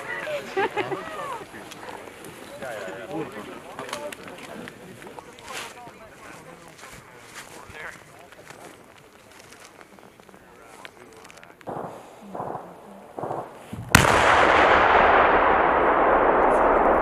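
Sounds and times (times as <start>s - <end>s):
explosive blast: 11.7s - 17.0s.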